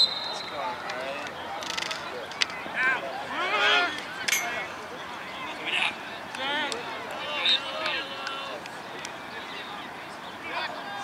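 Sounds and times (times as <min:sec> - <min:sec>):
referee's whistle blast: 0:00.0 - 0:00.6
voices on a field: 0:00.0 - 0:11.0.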